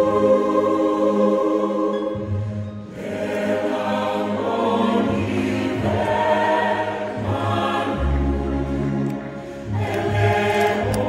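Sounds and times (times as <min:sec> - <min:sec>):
choir singing in harmony: 0:00.0 - 0:11.0.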